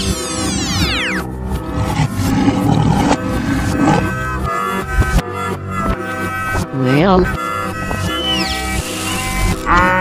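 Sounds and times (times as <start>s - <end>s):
lion roaring: 1.8s - 4.2s
cheerful background music: 2.6s - 9.9s.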